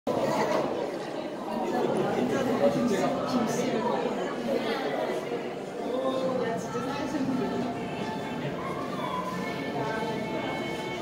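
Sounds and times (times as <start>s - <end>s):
background chatter of people: 0.1s - 11.0s.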